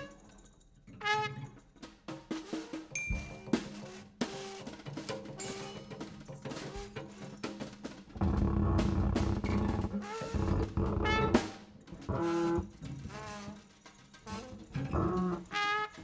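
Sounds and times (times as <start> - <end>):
drum and cymbal hits: 1.9 - 13.0.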